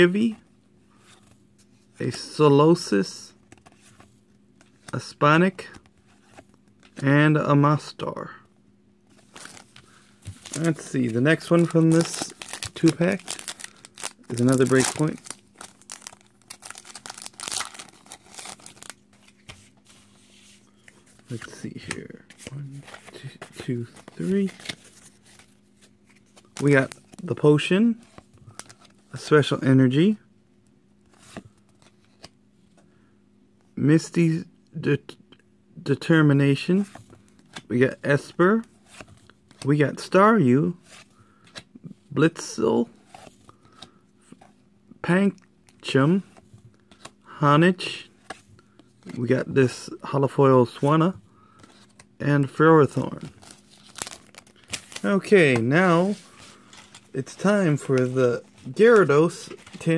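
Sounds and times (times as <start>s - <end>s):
trading cards clicking and rustling: 9.2s - 19.8s
foil wrapper tearing and crinkling: 11.8s - 19.0s.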